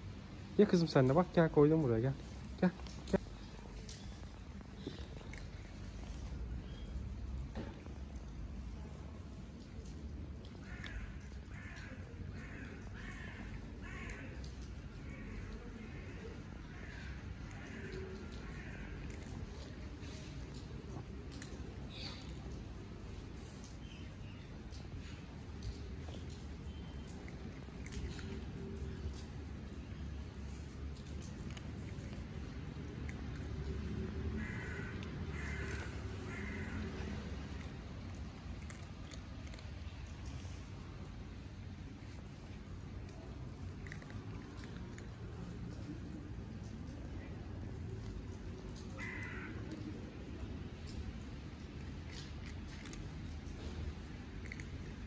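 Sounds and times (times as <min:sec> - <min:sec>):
bird cawing: 0:10.6 - 0:19.0, 0:34.2 - 0:37.7, 0:48.8 - 0:49.9.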